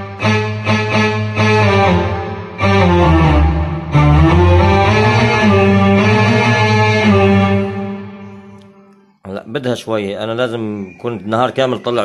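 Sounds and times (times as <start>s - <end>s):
electronic keyboard melody: 0.0s - 9.6s.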